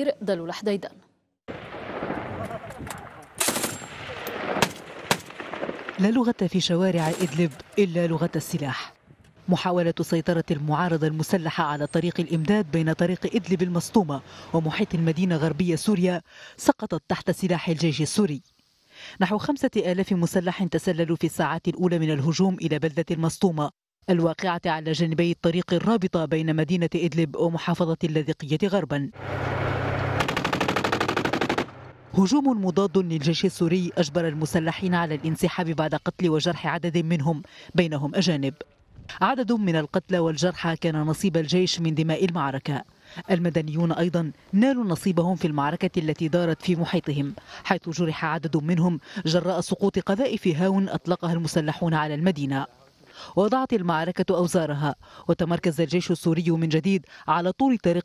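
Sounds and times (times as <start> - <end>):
loud gunshots: 3.4 - 6.0, 30.0 - 32.0
machine-gun fire: 3.4 - 6.0, 29.9 - 32.0
tank engine rumble: 29.2 - 35.7.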